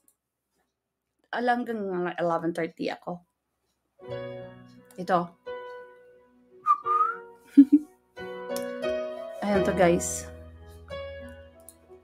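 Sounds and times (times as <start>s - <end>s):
soft piano chords: 4.0s - 12.0s
whistled note: 6.6s - 7.4s.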